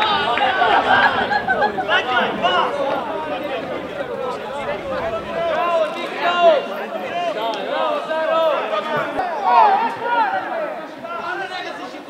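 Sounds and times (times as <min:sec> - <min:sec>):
men shouting and talking: 0:00.0 - 0:12.0.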